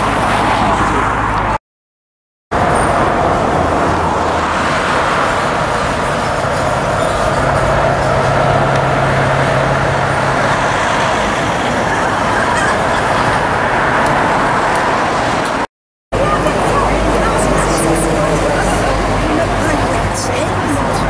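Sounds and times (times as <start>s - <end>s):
road traffic noise: 0.0s - 1.6s, 2.5s - 21.0s
low engine hum: 16.2s - 21.0s.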